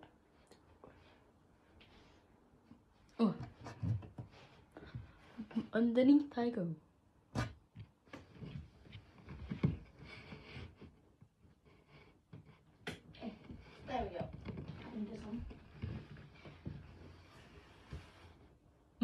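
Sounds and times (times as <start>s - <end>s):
rustling: 7.4s - 18.6s.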